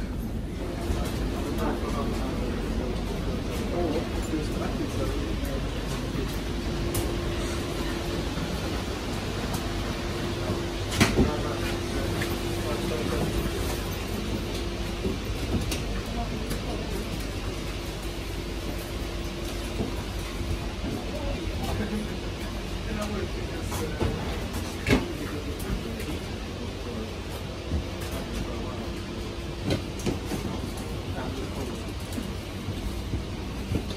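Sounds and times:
steady hum: 0.0s - 33.9s.

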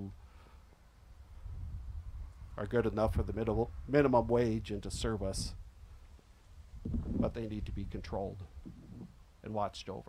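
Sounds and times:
faint low rumble: 1.3s - 9.6s.

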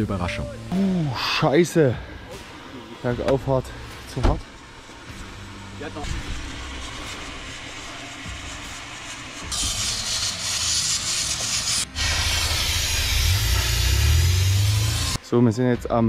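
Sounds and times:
steam hissing from radiator hose: 1.3s - 15.2s.

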